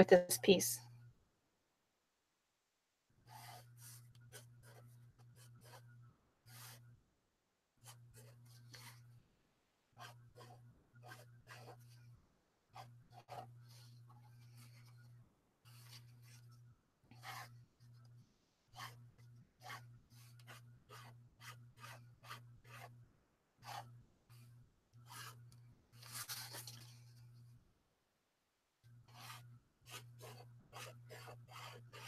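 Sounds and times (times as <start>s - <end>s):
pen nib scratching on paper: 3.2s - 6.8s, 7.8s - 9.2s, 9.9s - 22.9s, 23.6s - 26.8s, 29.0s - 32.0s
paper sheet rustling: 26.0s - 27.0s.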